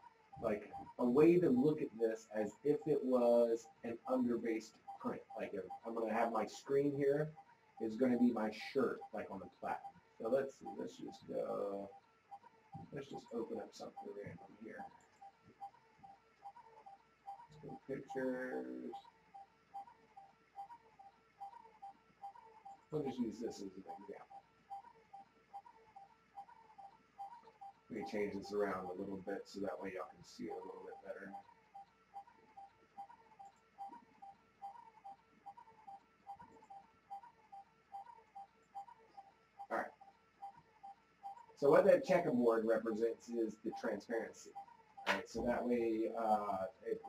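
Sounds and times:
rhythmic ticking pips: 0:00.0 - 0:47.0
person speaking: 0:00.4 - 0:07.2, 0:45.1 - 0:47.0.

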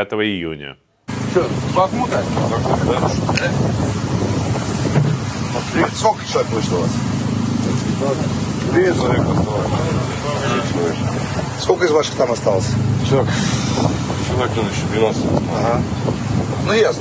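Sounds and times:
men's voices: 0:00.0 - 0:17.0
truck engine running: 0:01.1 - 0:17.0
wind buffeting microphone: 0:01.1 - 0:17.0.

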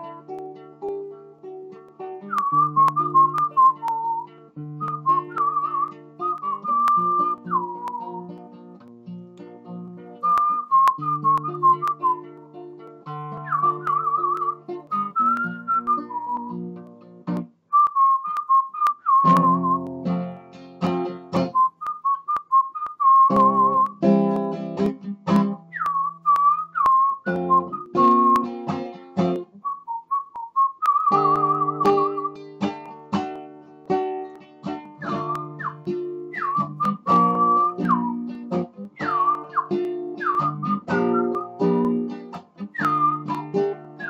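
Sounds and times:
acoustic guitar: 0:00.0 - 0:44.0
man whistling a melody: 0:02.2 - 0:08.4, 0:10.2 - 0:12.6, 0:13.3 - 0:16.7, 0:17.7 - 0:20.1, 0:21.5 - 0:24.0, 0:25.4 - 0:28.6, 0:29.6 - 0:32.6, 0:34.9 - 0:44.0.

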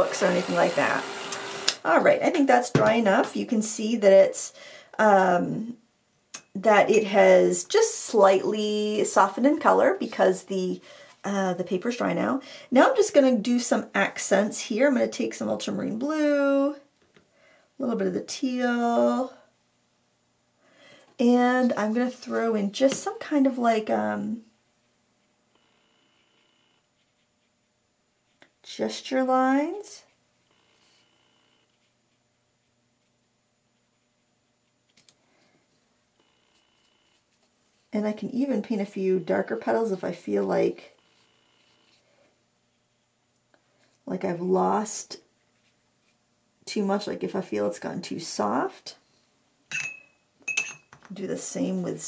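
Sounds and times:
paintbrush clinking against glass jar: 0:49.7 - 0:50.9.

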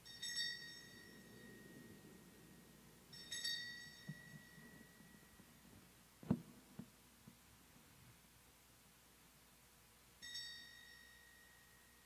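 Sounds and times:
altar bells chiming: 0:00.0 - 0:05.8, 0:10.2 - 0:12.0.

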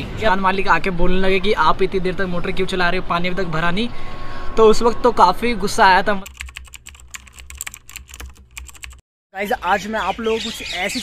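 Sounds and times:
keyboard key clicks: 0:06.3 - 0:09.0.

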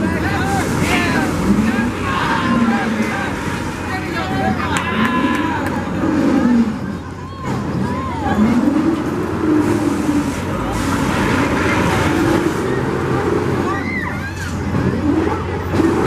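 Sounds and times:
fairground ride mechanical rumble: 0:00.0 - 0:16.0
people's voices: 0:00.0 - 0:16.0.

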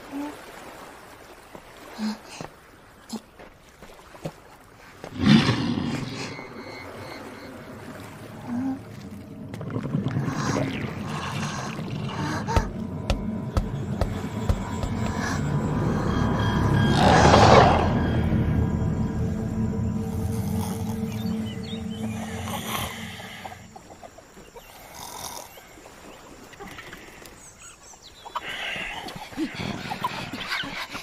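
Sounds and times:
low rumbling drone: 0:05.2 - 0:24.1
loud suspense music sting: 0:13.2 - 0:23.6.

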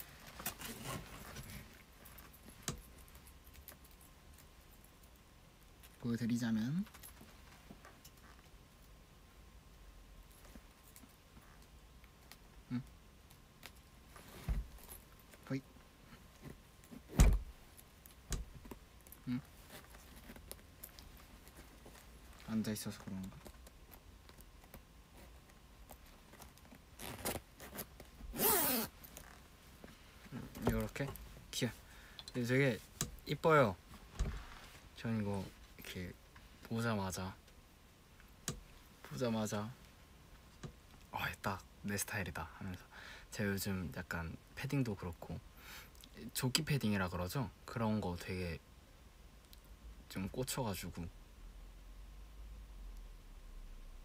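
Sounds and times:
leather vest rustling: 0:00.0 - 0:02.6, 0:18.4 - 0:24.0, 0:25.1 - 0:31.0
zipper clicks: 0:27.0 - 0:29.4.

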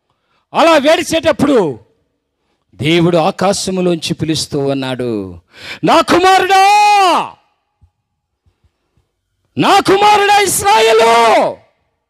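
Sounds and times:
man shouting into a microphone: 0:00.6 - 0:01.8, 0:05.8 - 0:07.5, 0:09.6 - 0:11.8.

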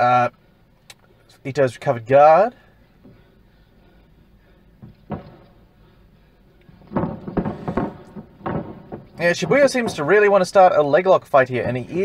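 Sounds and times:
dull knocks: 0:04.8 - 0:05.6, 0:06.8 - 0:10.1.

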